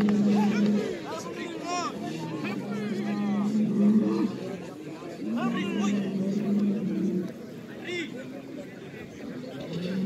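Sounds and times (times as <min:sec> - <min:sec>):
men calling out: 0:00.0 - 0:04.6.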